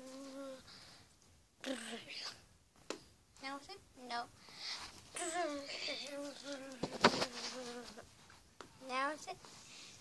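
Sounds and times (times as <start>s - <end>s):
person humming nasal tone: 0.0s - 0.6s.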